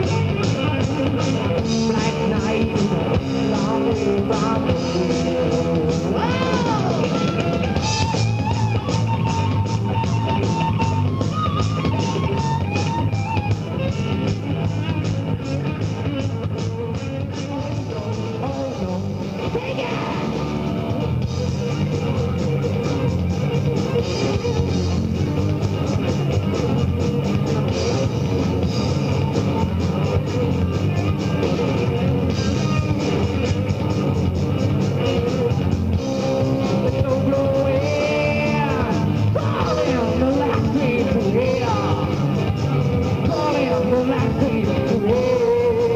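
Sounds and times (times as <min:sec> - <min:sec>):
busy drum beat: 0:00.0 - 0:45.9
hard rock band playing: 0:00.0 - 0:45.9.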